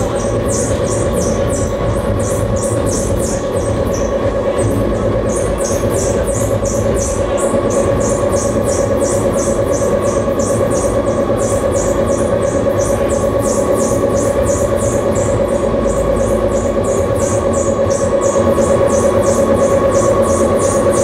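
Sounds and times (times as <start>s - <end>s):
steady droning electronic tone: 0.0s - 21.0s.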